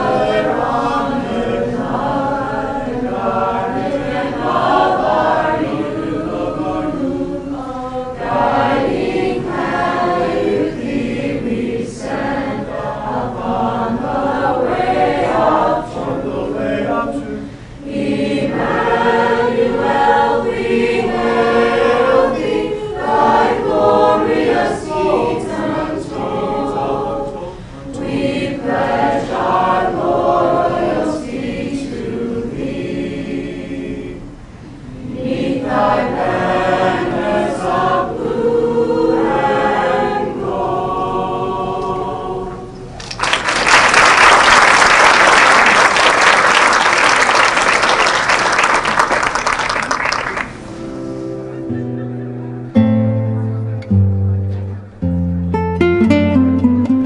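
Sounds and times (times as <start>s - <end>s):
group of voices singing: 0.0s - 42.9s
applause: 43.0s - 50.6s.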